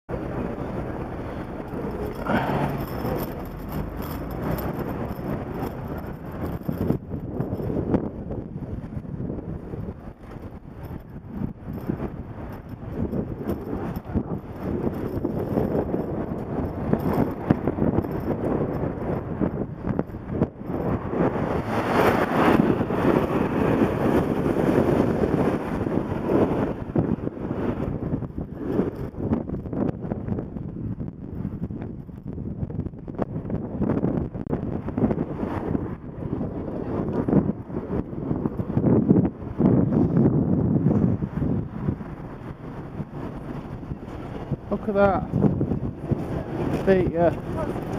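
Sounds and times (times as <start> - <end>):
car engine and road noise: 0.1 - 47.9
wind buffeting microphone: 0.1 - 47.9.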